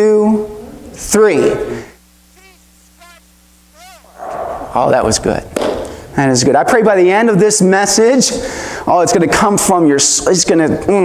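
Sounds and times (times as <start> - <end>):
steady low hum: 0.0 - 10.3.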